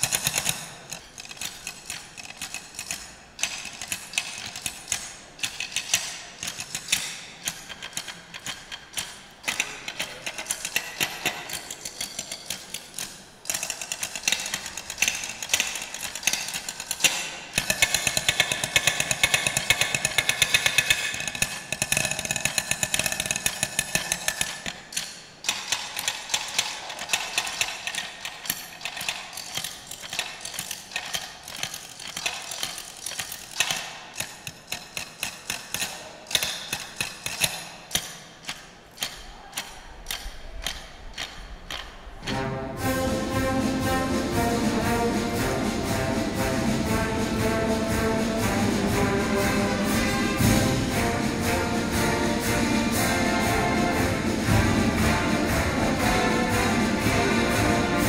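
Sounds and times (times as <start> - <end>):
drumsticks on wooden stools: 0.0 - 42.4.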